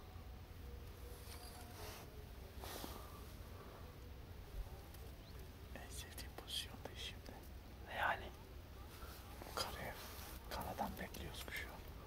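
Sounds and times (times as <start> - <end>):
man whispering: 5.7 - 8.4, 9.3 - 12.0.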